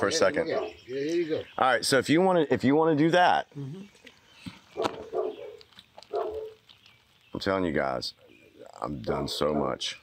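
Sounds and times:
dog barking: 0.5 - 0.8, 4.8 - 6.6.

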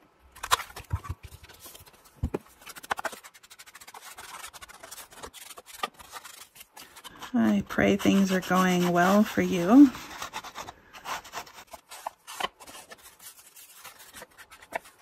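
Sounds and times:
tool rubbing on paper: 2.7 - 15.0.

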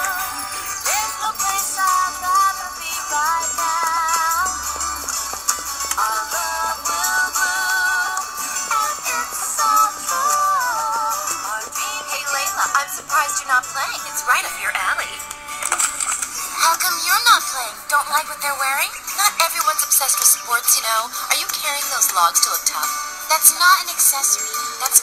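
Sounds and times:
woman singing pop melody: 0.0 - 15.8, 16.4 - 25.0
percussion: 0.0 - 25.0.

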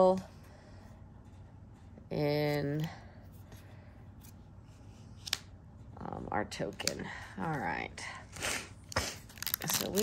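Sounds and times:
trading cards rustling: 8.9 - 10.0.

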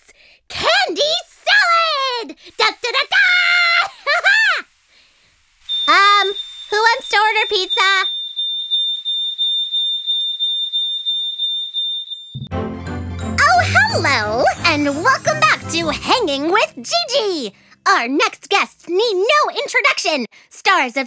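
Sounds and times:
high-pitched electronic tone: 5.7 - 12.5
children's show theme with singing: 12.4 - 19.0.

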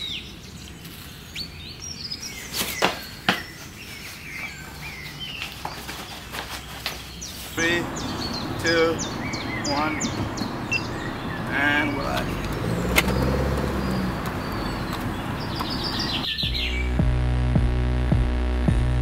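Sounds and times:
birds chirping and singing: 0.0 - 17.0
outdoor ambient noise: 0.0 - 19.0
background music with steady beat: 16.4 - 19.0.

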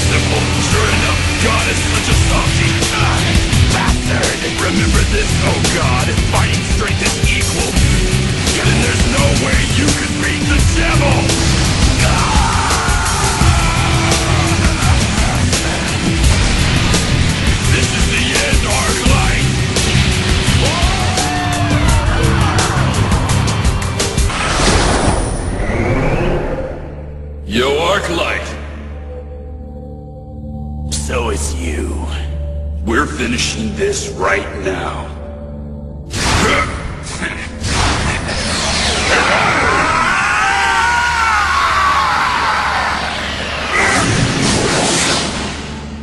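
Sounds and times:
rock music with fast drums: 0.0 - 24.5
rushing rumbling swell: 0.0 - 27.4, 38.9 - 46.0
men yelling battle cries: 7.7 - 16.8, 17.7 - 23.7, 39.1 - 44.3.

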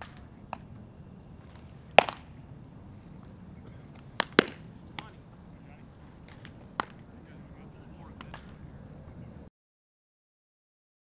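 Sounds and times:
baseballs popping into gloves: 1.5 - 2.3, 3.2 - 5.2, 6.2 - 7.0, 8.2 - 8.6.

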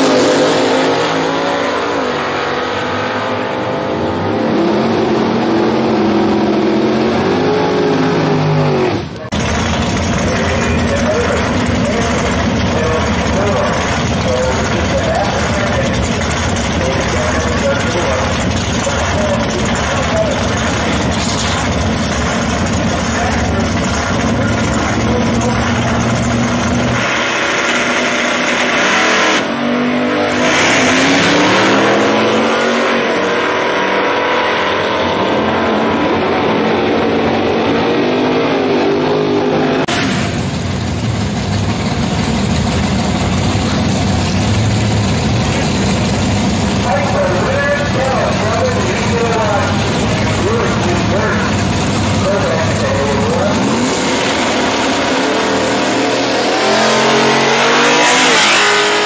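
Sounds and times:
drag racing engines roaring: 0.0 - 59.0.

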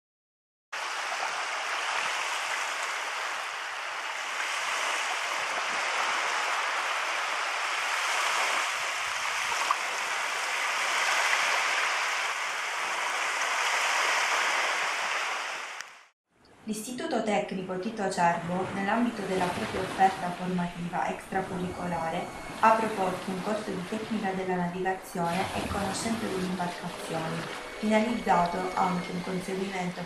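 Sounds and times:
small waves washing onto sand: 0.8 - 15.8, 25.1 - 29.3.

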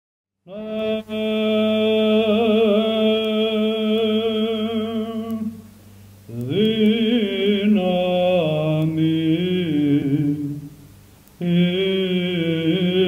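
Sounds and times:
man chanting: 0.5 - 5.7, 6.3 - 10.8, 11.4 - 13.0.

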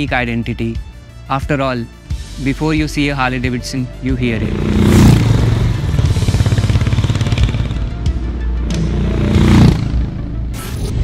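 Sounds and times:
motorcycle engine revving: 4.1 - 10.6.

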